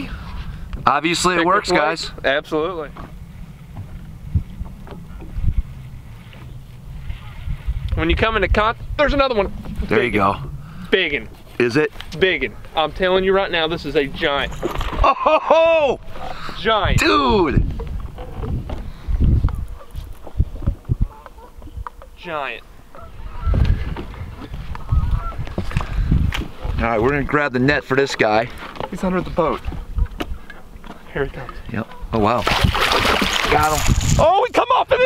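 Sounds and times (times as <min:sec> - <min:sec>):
wind buffeting microphone: 0:01.5 - 0:22.2, 0:22.9 - 0:27.5, 0:29.0 - 0:35.0
short low thumps: 0:07.6 - 0:11.4
camera handling rumble: 0:14.4 - 0:15.0.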